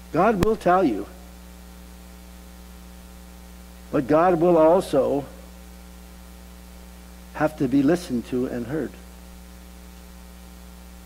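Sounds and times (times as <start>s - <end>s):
electrical mains hum: 0.0s - 11.0s
man speaking: 0.2s - 1.2s, 4.0s - 5.4s, 7.4s - 9.0s.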